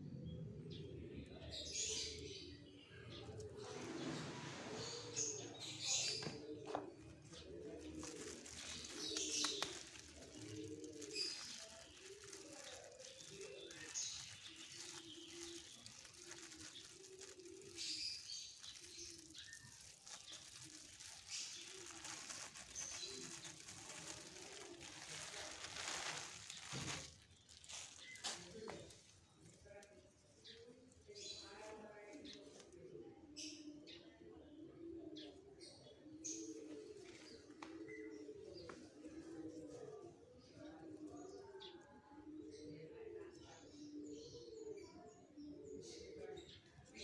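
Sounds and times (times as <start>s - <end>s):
small birds chirping: 0.1s - 47.0s
dove cooing: 0.4s - 26.9s, 32.3s - 43.0s.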